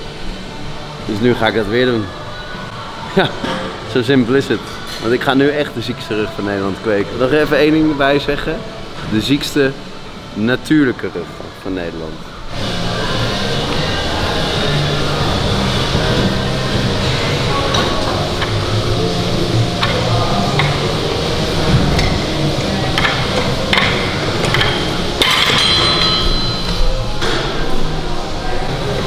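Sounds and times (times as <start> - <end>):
background music: 12.3 - 29.0
weight plates clanking: 19.7 - 27.6.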